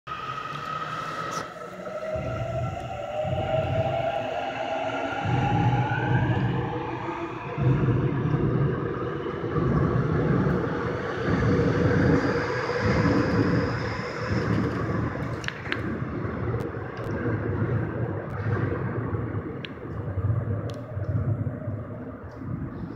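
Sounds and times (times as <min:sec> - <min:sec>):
faint train whine: 0:00.1 - 0:15.7
train wheels rumbling on rails: 0:01.6 - 0:17.2.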